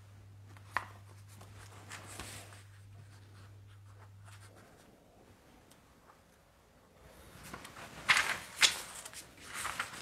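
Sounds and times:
steady low hum: 0:00.0 - 0:08.0
faint rustling and scratching: 0:01.0 - 0:06.4.

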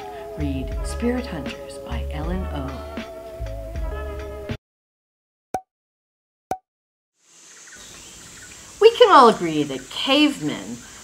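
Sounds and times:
woman speaking: 0:00.4 - 0:02.9, 0:08.8 - 0:10.8
faint outdoor ambience: 0:07.2 - 0:11.0.

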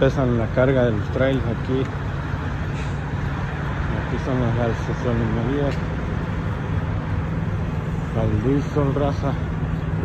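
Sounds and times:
diesel truck engines idling: 0:00.0 - 0:10.0.

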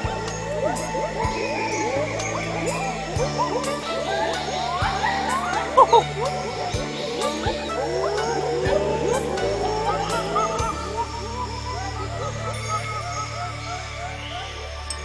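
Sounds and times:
chorus of sliding animal calls: 0:00.0 - 0:15.0.

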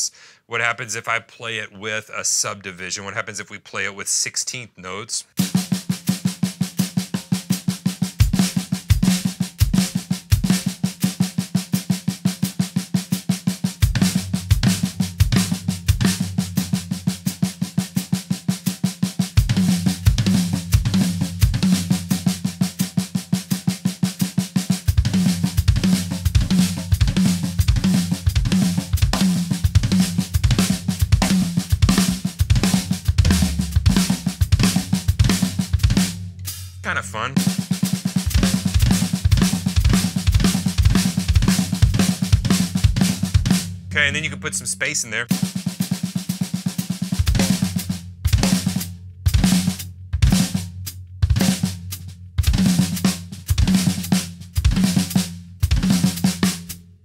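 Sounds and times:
snare and tom strokes: 0:25.2 - 0:56.8
bass drum strokes: 0:26.1 - 0:36.4
low tom strokes: 0:31.2 - 0:35.7.

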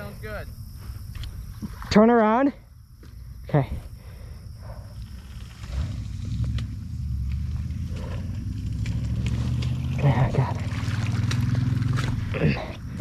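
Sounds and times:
small motorcycle engine running: 0:05.2 - 0:12.3
light splashes in water: 0:08.8 - 0:12.2.

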